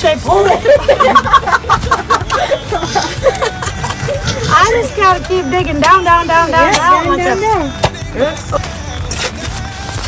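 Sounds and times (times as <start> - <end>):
shovel digging into soil: 9.1 - 9.6.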